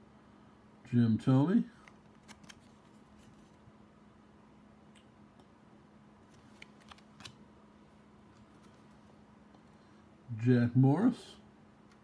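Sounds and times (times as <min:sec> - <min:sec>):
card handling clicks: 0:01.8 - 0:03.5, 0:06.2 - 0:07.4.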